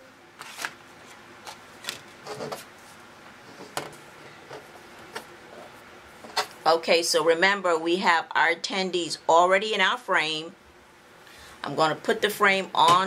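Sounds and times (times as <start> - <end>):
paper rustling: 0.4 - 3.7.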